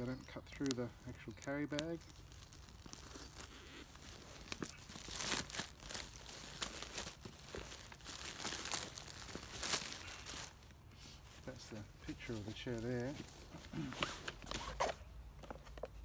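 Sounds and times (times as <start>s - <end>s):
plastic packaging tearing and crinkling: 0.0s - 10.8s.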